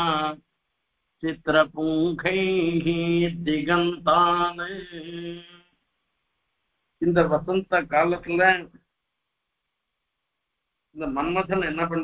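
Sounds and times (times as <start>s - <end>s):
man chanting melodically: 0.0s - 0.4s, 1.2s - 5.6s.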